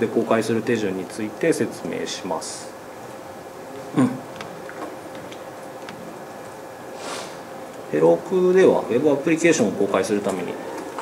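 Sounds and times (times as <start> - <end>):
steady room hum: 0.0 - 11.0.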